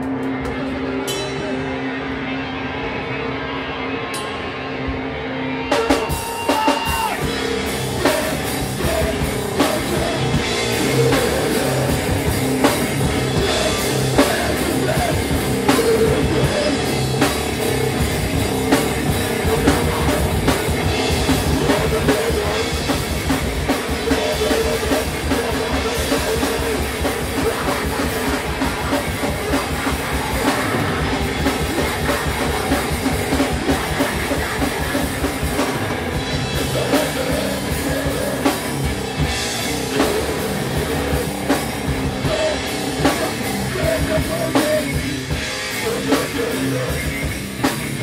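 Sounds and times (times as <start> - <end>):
rock band playing live: 0.0 - 48.0
fast drumming on drum kit: 5.8 - 48.0.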